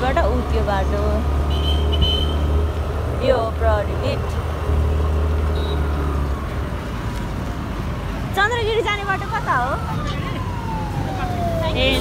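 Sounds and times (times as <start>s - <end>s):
road noise: 0.0s - 12.0s
motorbike engine: 11.8s - 12.0s.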